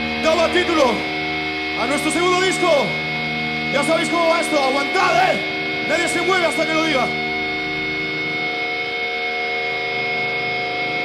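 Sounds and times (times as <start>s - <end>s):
electric guitar drone: 0.0s - 11.0s.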